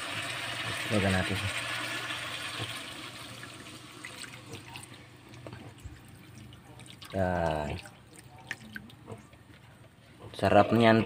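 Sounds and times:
hissing pan: 0.0 - 5.8
liquid pouring into a wok: 0.0 - 8.4.

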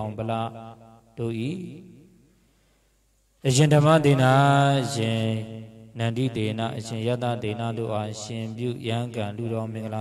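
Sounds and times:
man chanting in low voice: 0.0 - 2.3, 3.4 - 10.0.

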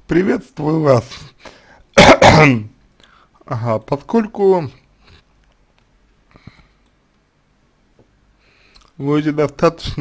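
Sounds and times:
man clearing his throat: 2.0 - 2.7.

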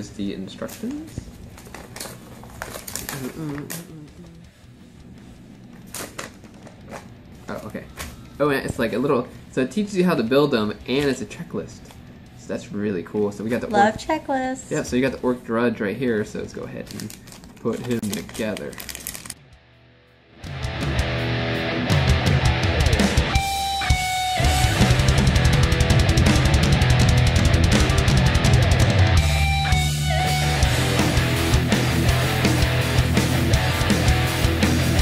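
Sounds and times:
rock music with electric guitar: 19.4 - 35.0.

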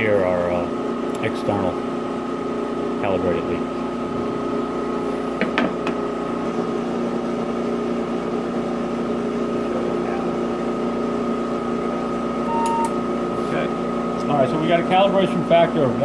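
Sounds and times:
vacuum pump humming: 0.0 - 16.0
short beep: 12.5 - 13.0.

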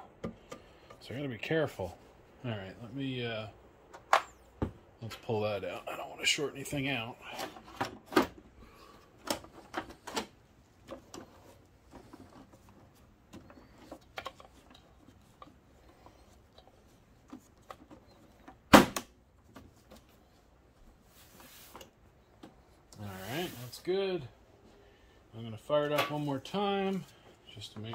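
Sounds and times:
loud plastic snap: 18.7 - 19.1.

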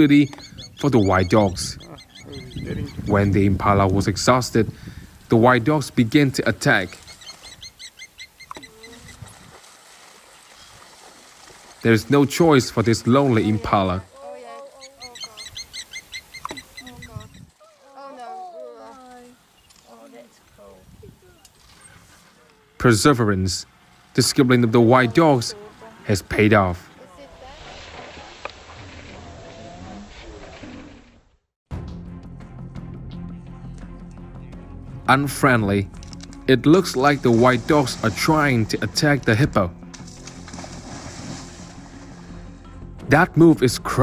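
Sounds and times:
wild dogs twittering: 0.0 - 3.1, 14.2 - 18.4.

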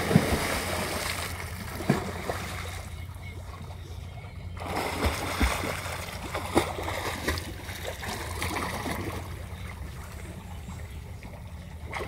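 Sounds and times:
loud splash into pool: 0.0 - 1.3
swimming splashes: 0.0 - 3.8, 4.5 - 12.0
water sloshing: 0.0 - 12.0.

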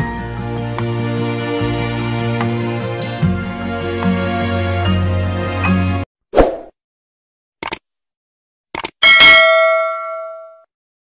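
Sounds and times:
bright bell ding: 9.0 - 10.7.

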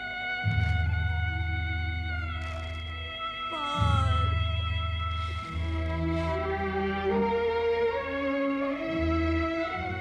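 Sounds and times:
background score music: 0.0 - 10.0.

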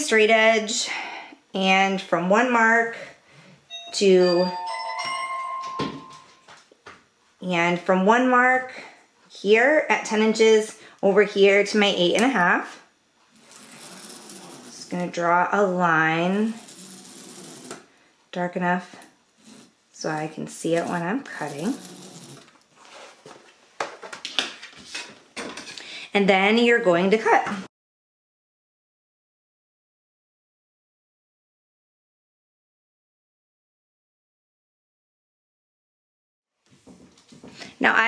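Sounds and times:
bell-like chime: 3.7 - 6.5.

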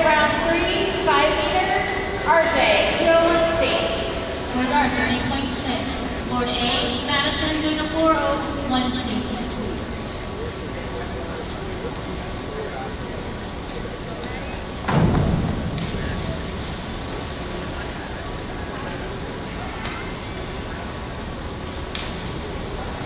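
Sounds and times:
indoor pool hall noise: 0.0 - 23.0.

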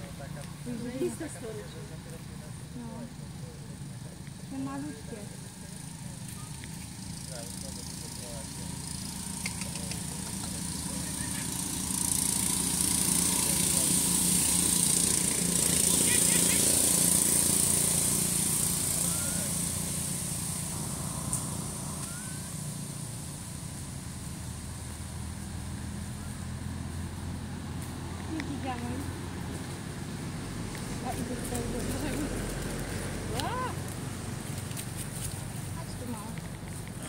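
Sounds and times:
distant engine hum: 0.0 - 37.0
high hissing buzz: 5.4 - 28.2.

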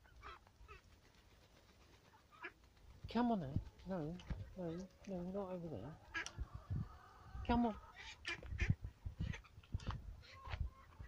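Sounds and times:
young ducks quacking: 0.0 - 0.9, 2.1 - 2.6, 5.6 - 6.4, 7.4 - 9.6.

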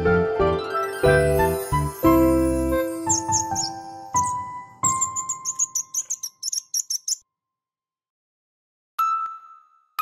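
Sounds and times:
cartoon bird chirps: 3.1 - 7.2.

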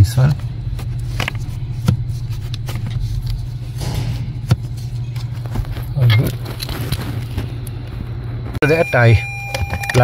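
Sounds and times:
vehicle running hum: 0.0 - 8.6.

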